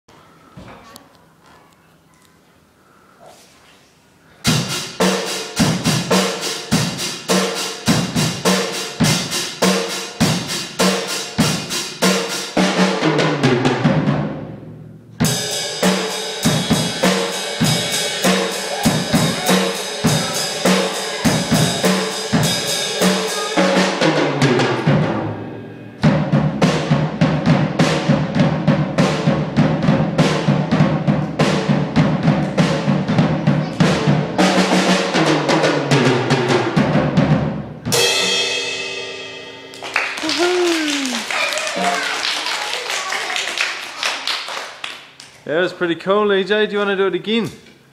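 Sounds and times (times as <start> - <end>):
drum kit solo: 4.4 - 42.4.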